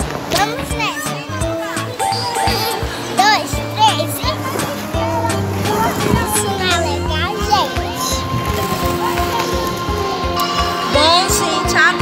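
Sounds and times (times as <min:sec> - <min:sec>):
background music with steady beat: 0:00.0 - 0:12.0
child's excited voice: 0:00.3 - 0:09.7.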